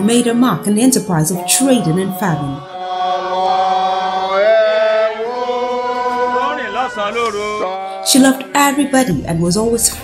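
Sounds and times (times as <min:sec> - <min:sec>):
voices singing a hymn: 0:00.0 - 0:10.0.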